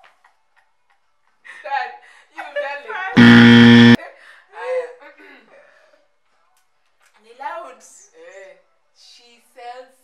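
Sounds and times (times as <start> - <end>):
buzzy horn sound effect: 3.2 - 4.0.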